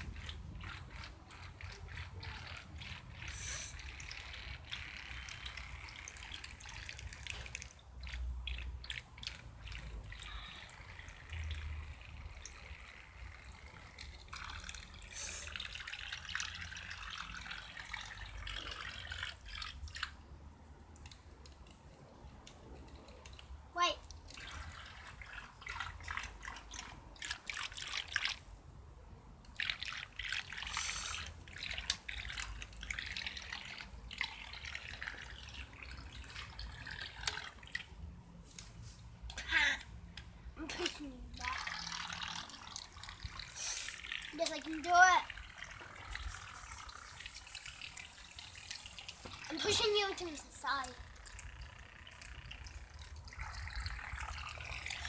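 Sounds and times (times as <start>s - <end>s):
water splashing and trickling: 0.0s - 55.0s.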